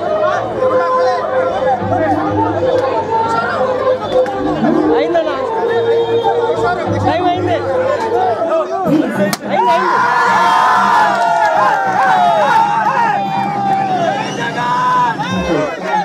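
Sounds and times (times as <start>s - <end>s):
background music: 0.0s - 16.0s
crowd talking: 0.0s - 16.0s.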